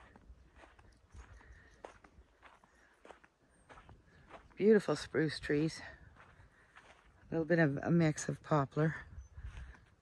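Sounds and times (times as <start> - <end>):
footsteps through grass: 0.0 - 8.4.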